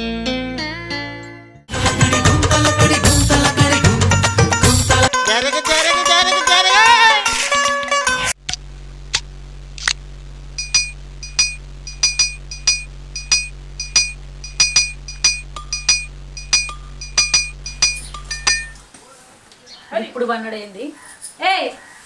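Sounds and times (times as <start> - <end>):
steady low hum: 8.4 - 18.8
bright ringing clinks: 10.6 - 18.8.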